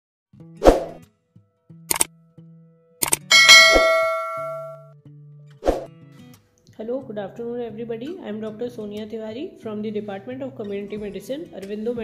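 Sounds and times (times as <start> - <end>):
sharp metallic hits: 3.2 - 4.8
low steady tone: 3.3 - 4.8
ringing chime: 3.3 - 4.8.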